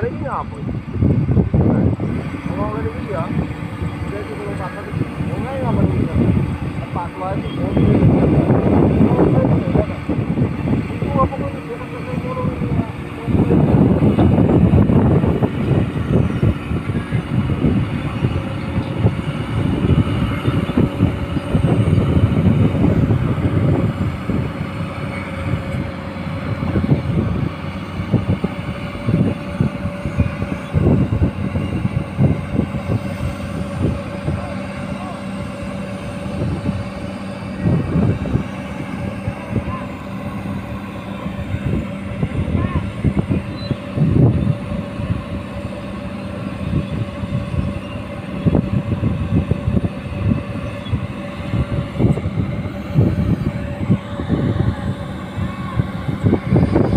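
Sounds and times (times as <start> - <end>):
excavator diesel engine whining: 0.0 - 56.9.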